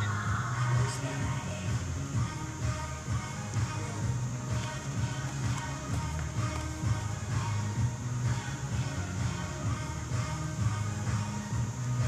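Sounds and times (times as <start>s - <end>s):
music with heavy bass line: 0.0s - 12.0s.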